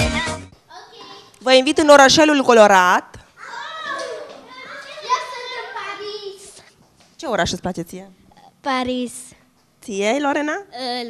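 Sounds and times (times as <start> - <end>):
children chattering: 3.4 - 6.7.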